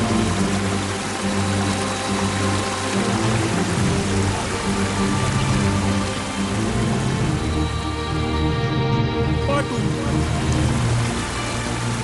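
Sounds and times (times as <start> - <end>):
held low music notes: 0.0 - 12.0.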